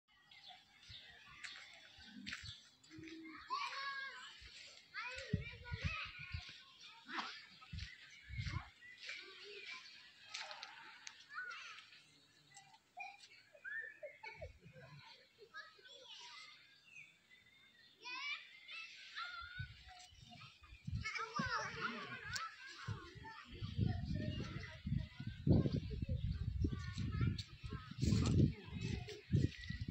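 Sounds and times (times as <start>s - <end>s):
children calling out: 2.8s - 16.6s, 18.0s - 29.7s.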